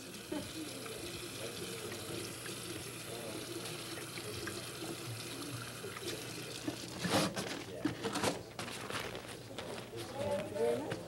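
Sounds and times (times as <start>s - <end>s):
tap water running into sink: 0.0s - 7.4s
faint background voices: 0.0s - 11.0s.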